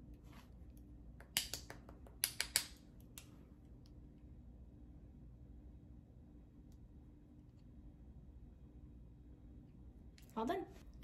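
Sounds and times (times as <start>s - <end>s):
makeup items clicking and tapping: 1.1s - 2.8s.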